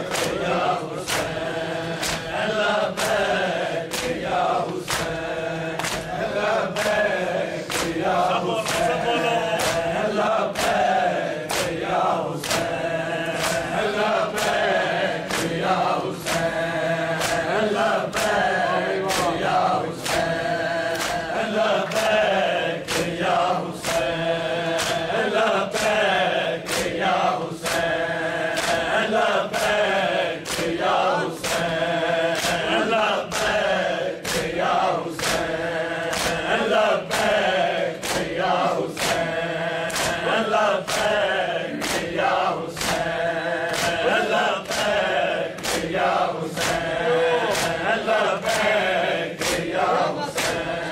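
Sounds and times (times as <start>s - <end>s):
group chanting in unison: 0.0s - 50.9s.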